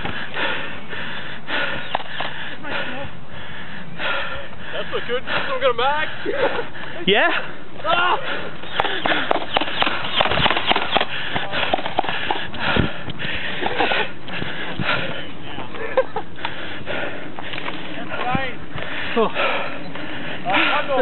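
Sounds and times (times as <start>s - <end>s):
voices calling out: 0.0s - 21.0s.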